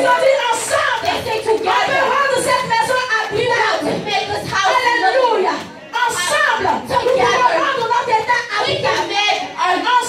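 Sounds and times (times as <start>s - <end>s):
woman speaking over loudspeaker: 0.0s - 10.0s.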